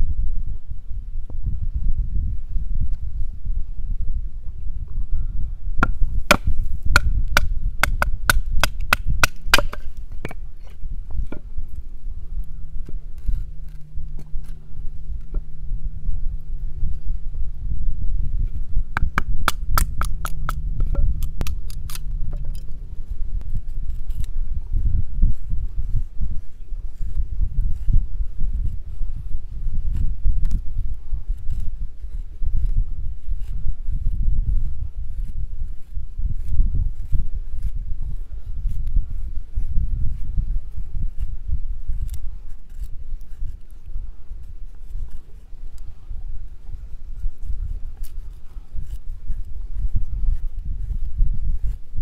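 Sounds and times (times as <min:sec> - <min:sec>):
wind rumble on microphone: 0:00.0 - 0:52.0
knife scraping wood: 0:05.8 - 0:11.8, 0:12.8 - 0:15.5, 0:18.4 - 0:24.4, 0:41.9 - 0:45.9, 0:47.2 - 0:51.9.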